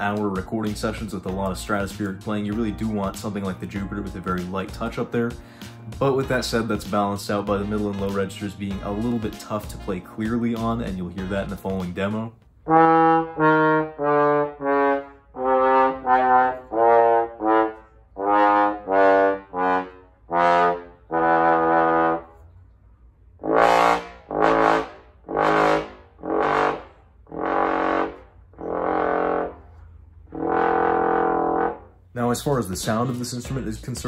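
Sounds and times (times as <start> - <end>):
trombone playing tongued notes: 12.6 - 22.4, 23.4 - 34.0.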